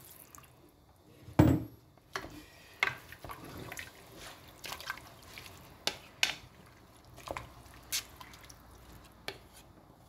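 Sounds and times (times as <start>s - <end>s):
spoon stirring in pot: 2.1s - 10.0s
liquid dripping and splashing: 3.2s - 5.8s, 6.6s - 9.0s.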